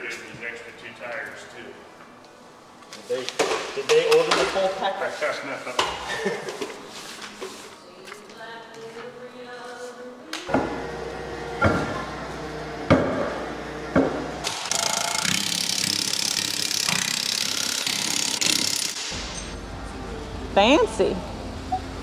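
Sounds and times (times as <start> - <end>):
impact wrench hammering: 12.9 - 19.6.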